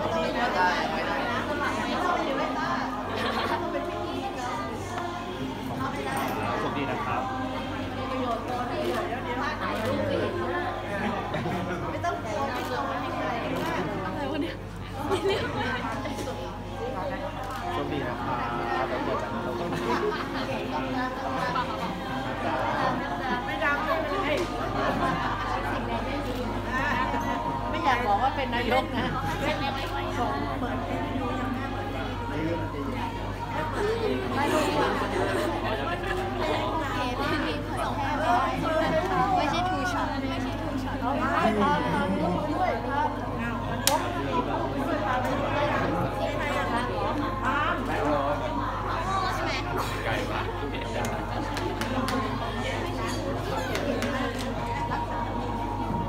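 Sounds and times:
chatter of many voices: 0:00.0 - 0:56.0.

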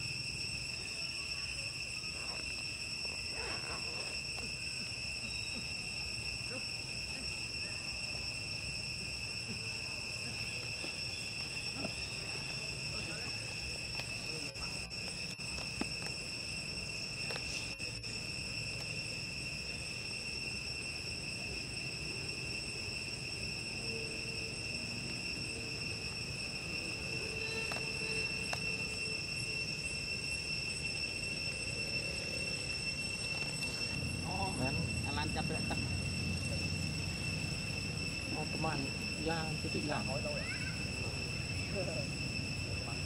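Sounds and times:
high-pitched insect drone: 0:00.0 - 0:43.0.

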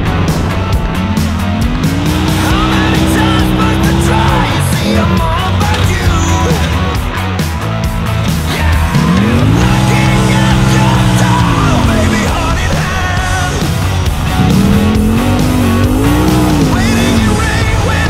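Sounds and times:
background music: 0:00.0 - 0:18.0
engine revving: 0:00.0 - 0:18.0.

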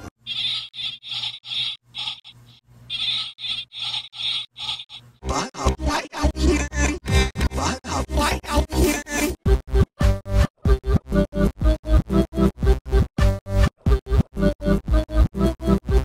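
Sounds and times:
looped short sound effect: 0:00.3 - 0:05.0.

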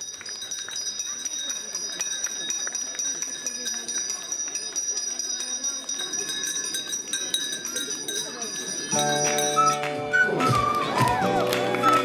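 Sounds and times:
handbell ringing: 0:00.0 - 0:09.9.

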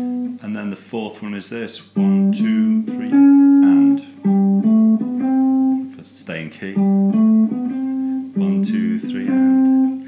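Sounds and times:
electric guitar single notes: 0:00.0 - 0:00.5, 0:01.8 - 0:10.0.

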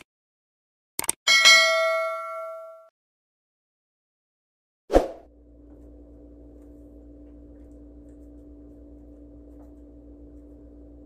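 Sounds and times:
notification bell ding: 0:01.3 - 0:02.9.

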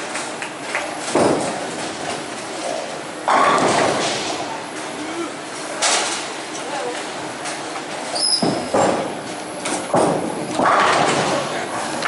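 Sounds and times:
bowling balls rumbling down lanes: 0:01.0 - 0:04.5, 0:09.9 - 0:12.0
bowling pins clattering: 0:09.8 - 0:12.0.

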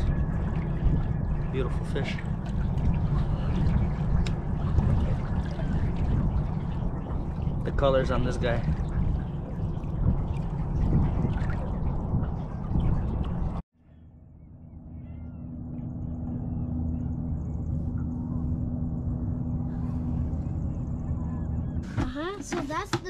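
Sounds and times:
boat motor humming: 0:00.0 - 0:23.0
faint bird calls: 0:13.8 - 0:18.5.

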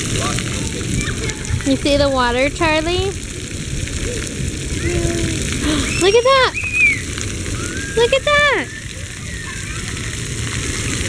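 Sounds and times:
water jets splattering on concrete: 0:00.0 - 0:11.0
children's voices: 0:00.5 - 0:02.2, 0:04.0 - 0:11.0.

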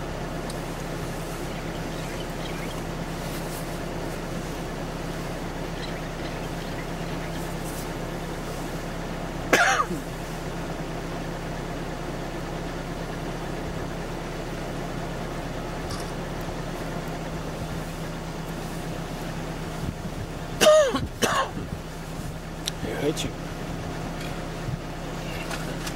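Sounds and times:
vehicle engine idling: 0:00.0 - 0:25.9
person coughing: 0:09.5 - 0:10.0, 0:20.6 - 0:21.6.

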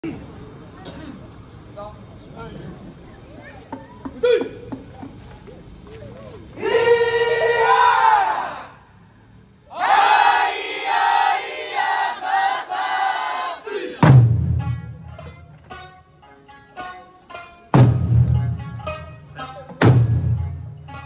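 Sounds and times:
group shouting in unison: 0:06.6 - 0:08.8, 0:09.7 - 0:14.0
heavy drum strike: 0:14.0 - 0:15.6, 0:17.8 - 0:19.2, 0:19.8 - 0:21.0.

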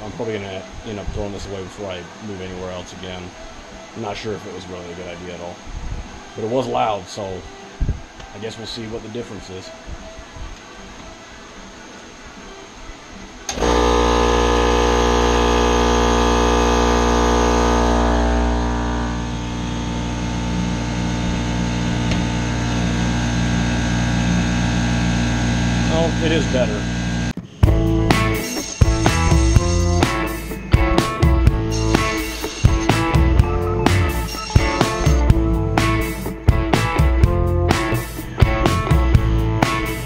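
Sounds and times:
air compressor humming: 0:13.5 - 0:40.0
guitar music with drums: 0:25.9 - 0:40.0.

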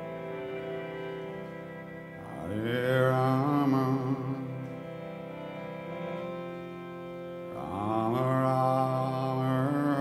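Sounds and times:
mantra chanting: 0:02.2 - 0:04.7, 0:07.5 - 0:10.0
person singing long notes: 0:02.2 - 0:10.0.

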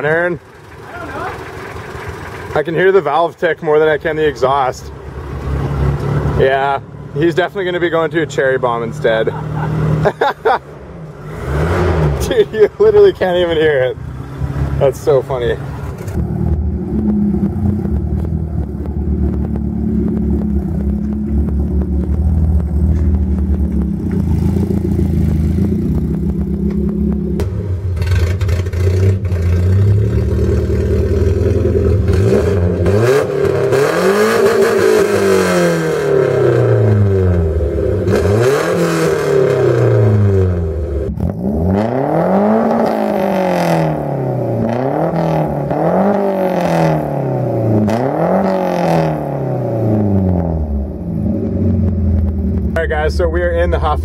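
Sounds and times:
car engine idling and revving: 0:00.0 - 0:54.0.

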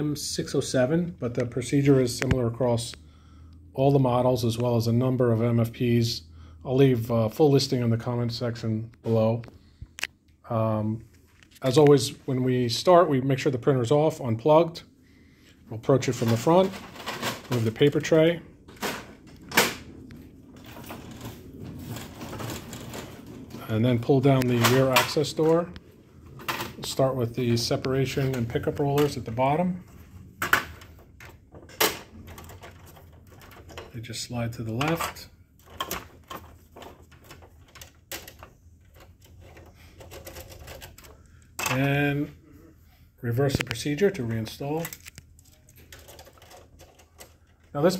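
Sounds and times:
low rubbing and handling noise: 0:15.6 - 0:31.7.

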